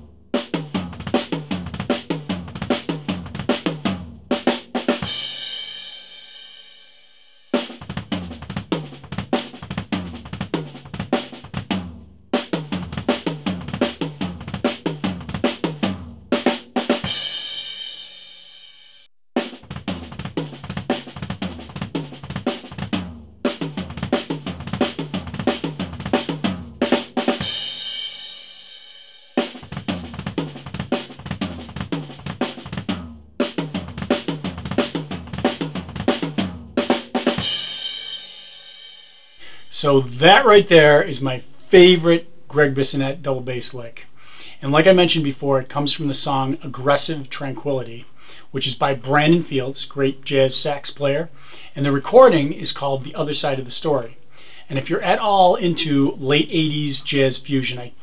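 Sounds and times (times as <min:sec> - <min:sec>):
fast bass drum runs: 0:00.0 - 0:06.2, 0:07.6 - 0:18.4, 0:19.4 - 0:38.8
snare and tom strokes: 0:00.4 - 0:05.3, 0:07.6 - 0:18.7, 0:19.4 - 0:28.5, 0:29.4 - 0:38.4.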